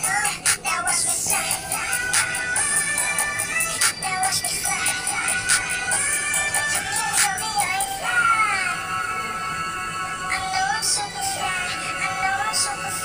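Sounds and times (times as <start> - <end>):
pop backing track: 0.0 - 8.4.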